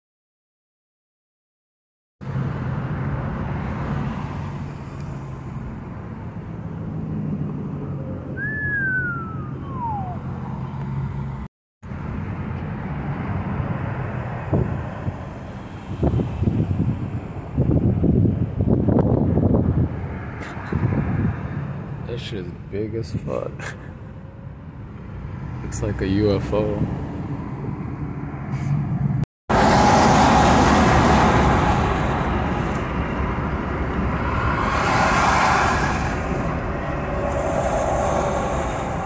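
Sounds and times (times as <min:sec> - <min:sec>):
engine and road hum: 0:02.2 - 0:39.0
falling whistle: 0:08.4 - 0:10.3.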